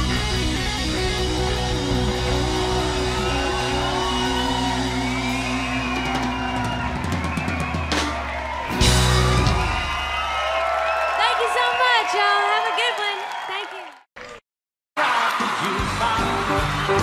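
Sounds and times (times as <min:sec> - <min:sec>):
drum fills: 0:00.0 - 0:10.6
audience whooping: 0:00.1 - 0:14.4.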